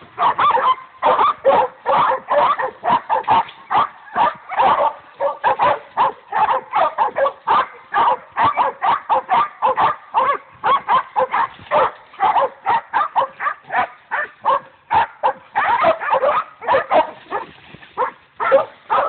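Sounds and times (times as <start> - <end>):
dogs barking rapidly: 0.0 - 19.0.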